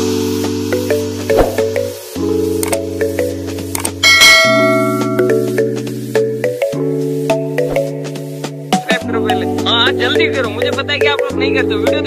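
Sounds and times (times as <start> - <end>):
music with sustained chords: 0.0 - 11.9
bright bell chime: 4.0 - 5.6.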